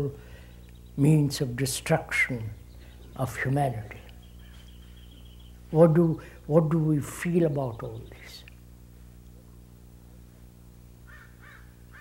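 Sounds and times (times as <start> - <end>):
low electrical hum: 0.0 - 12.0
faint bird calls: 2.2 - 6.4, 11.0 - 12.0.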